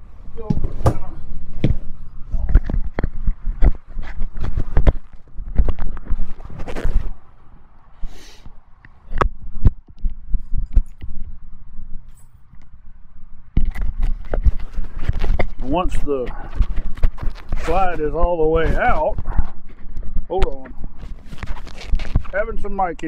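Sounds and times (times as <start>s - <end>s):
microphone handling knocks and rubbing: 0.3s - 7.7s, 9.0s - 12.6s, 13.5s - 22.6s.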